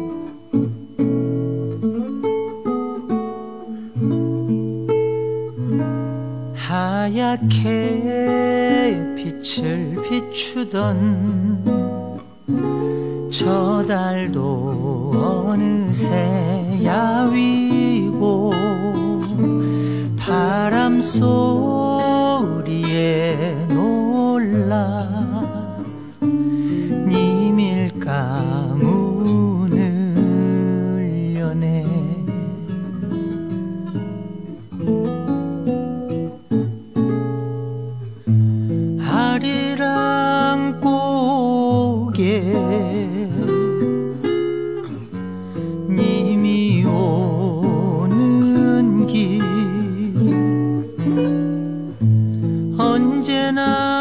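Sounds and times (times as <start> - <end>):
acoustic guitar accompaniment: 0.0 - 54.0
person singing with vibrato: 6.6 - 33.2, 39.0 - 44.2, 45.6 - 51.2, 52.7 - 54.0.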